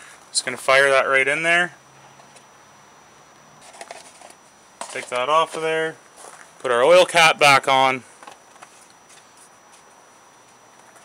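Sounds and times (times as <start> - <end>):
plastic funnel clicks and rustles: 3.6 - 5.6.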